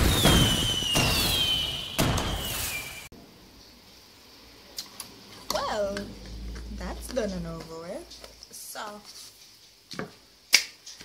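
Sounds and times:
high whistle falling in pitch: 0.0 - 3.1
loud bangs: 0.0 - 3.1.

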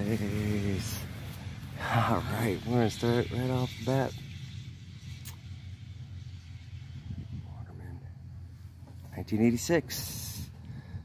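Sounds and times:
distant engine humming: 0.0 - 11.0.

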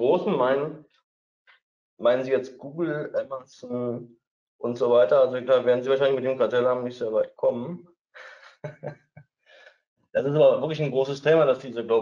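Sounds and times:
man breathing in: 8.2 - 8.6, 9.4 - 9.8.

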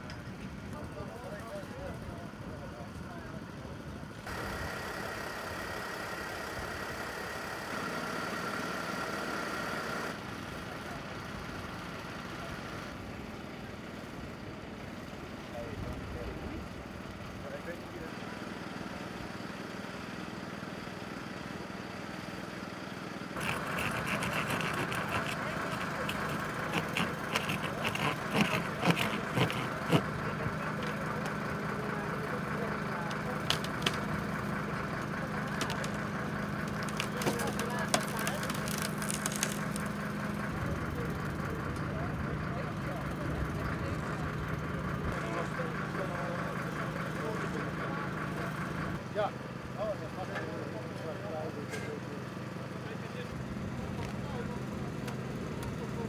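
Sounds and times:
engine hum: 0.0 - 56.0
people's voices: 23.4 - 39.7
hydraulic pump: 23.4 - 40.0
sharp cracks and snaps: 33.1 - 34.1, 35.4 - 40.0.

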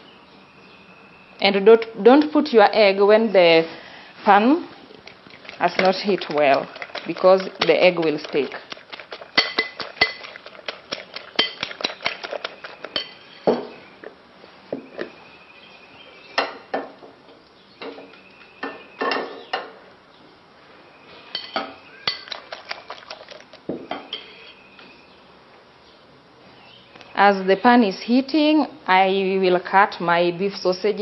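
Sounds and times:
utensil beating eggs in glass bowl: 4.3 - 13.3, 22.0 - 23.6
cookware clinks and knocks: 12.9 - 13.8, 18.6 - 19.7, 21.4 - 22.4.

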